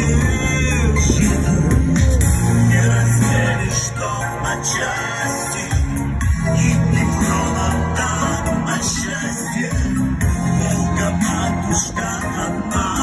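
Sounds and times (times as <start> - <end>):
backing track with bass line: 0.0 - 13.0
man singing into microphone: 0.0 - 13.0.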